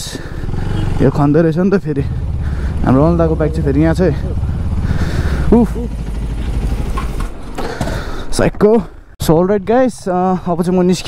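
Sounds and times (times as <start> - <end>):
motorcycle engine idling: 0.0 - 8.1.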